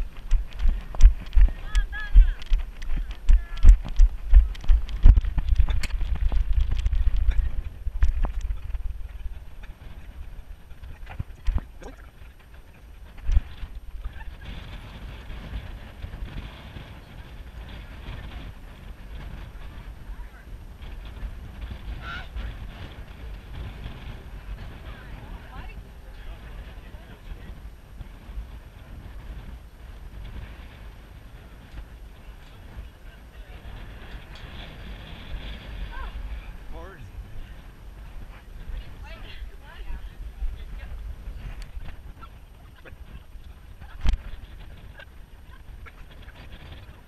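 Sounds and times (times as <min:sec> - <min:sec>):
running footfalls thudding: 0:00.0 - 0:07.2
faint voices: 0:00.0 - 0:47.0
wind on microphone: 0:00.0 - 0:47.0.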